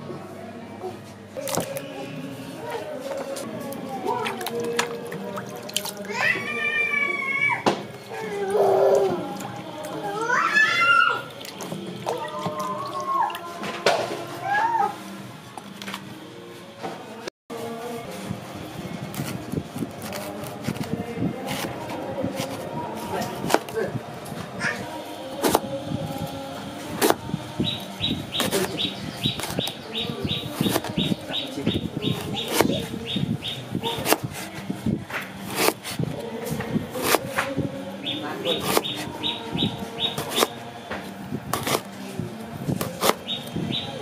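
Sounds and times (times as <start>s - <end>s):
knife slicing fruit: 19.0s - 23.9s, 25.4s - 25.8s, 26.9s - 27.2s, 28.4s - 29.8s, 30.4s - 33.0s, 33.9s - 37.6s, 38.5s - 39.1s, 40.1s - 42.0s, 42.7s - 43.3s.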